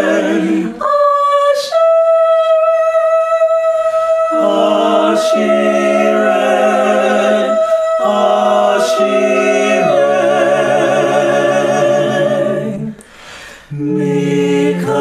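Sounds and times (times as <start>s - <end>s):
a cappella group singing: 0.0s - 15.0s.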